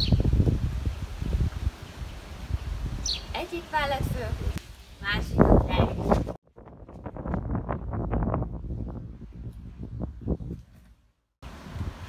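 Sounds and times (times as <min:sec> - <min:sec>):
wind buffeting microphone: 0:00.0 - 0:12.0.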